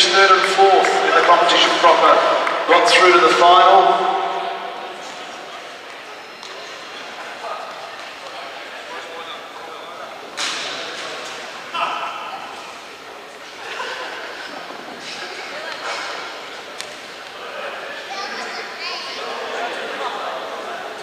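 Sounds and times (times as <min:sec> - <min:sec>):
people chattering in echoing hall: 0:00.0 - 0:21.0.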